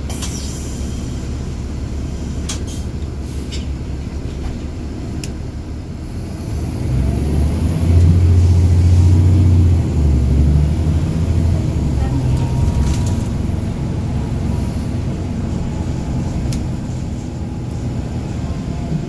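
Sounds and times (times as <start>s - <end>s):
bus diesel engine droning: 0.0s - 19.0s.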